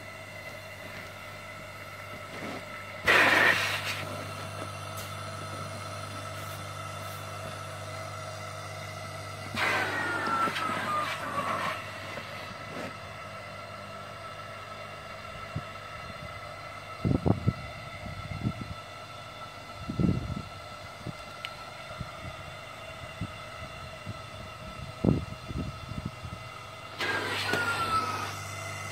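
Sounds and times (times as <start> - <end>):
air pump humming: 0.0 - 28.9.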